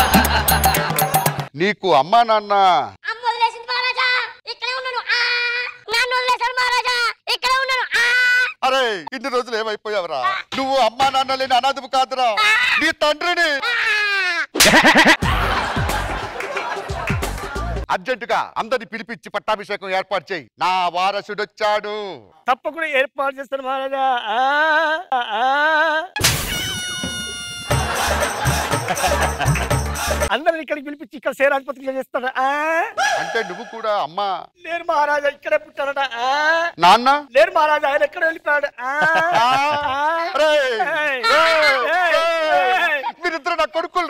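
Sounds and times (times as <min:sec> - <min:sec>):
people laughing: 0:00.0 - 0:01.5, 0:14.6 - 0:17.8, 0:27.5 - 0:30.3, 0:38.8 - 0:43.4
rhythmic music with drum beat: 0:00.0 - 0:01.6, 0:14.6 - 0:17.9, 0:26.5 - 0:30.3.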